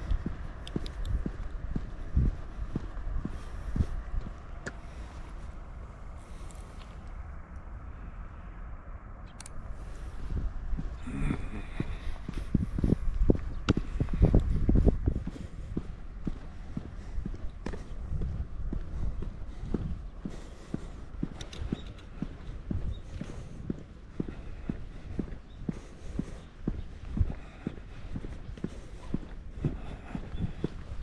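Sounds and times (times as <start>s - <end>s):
footsteps on asphalt: 0.0s - 7.4s, 9.6s - 31.0s
low rumble: 0.0s - 31.0s.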